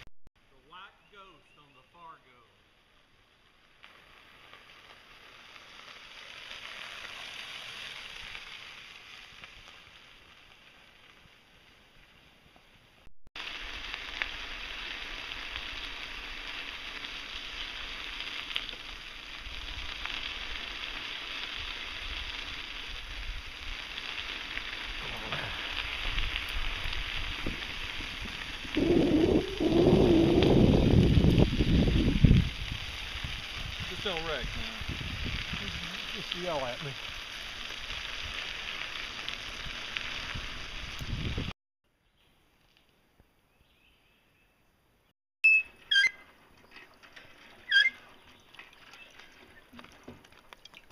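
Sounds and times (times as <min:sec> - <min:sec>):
bicycle tyres hissing on gravel: 0:01.1 - 0:41.5
wind on microphone: 0:25.2 - 0:36.0, 0:39.6 - 0:41.5.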